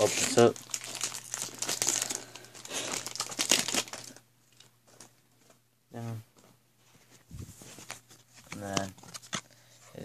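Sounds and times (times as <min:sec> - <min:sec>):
foil wrapper crinkling and tearing: 0:00.0 - 0:05.1.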